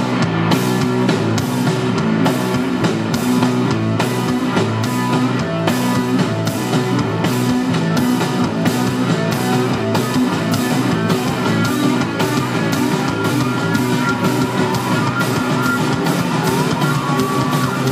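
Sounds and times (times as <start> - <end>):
bass guitar: 0.0 - 17.9
drum kit: 0.0 - 17.9
electric guitar: 0.0 - 17.9.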